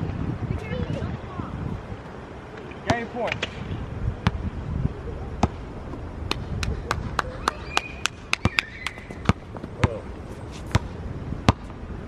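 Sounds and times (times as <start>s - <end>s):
basketball bouncing on court: 8.3s - 10.0s, 10.7s - 11.7s.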